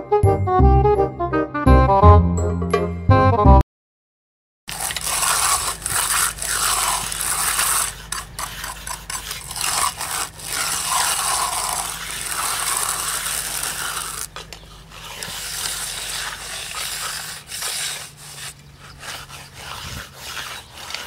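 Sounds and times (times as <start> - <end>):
edger scraping concrete: 4.7 - 21.0.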